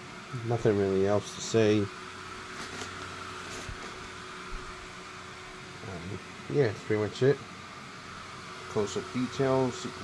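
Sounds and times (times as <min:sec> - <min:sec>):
blower fans whirring: 0:00.0 - 0:10.0.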